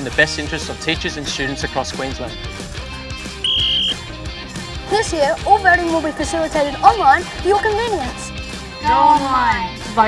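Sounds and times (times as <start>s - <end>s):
background music: 0.0s - 10.0s
sports whistle blast: 3.4s - 4.0s.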